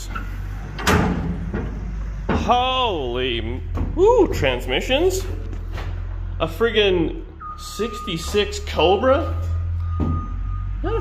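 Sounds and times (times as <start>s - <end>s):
metal door unlatching and opening: 0.0s - 2.4s.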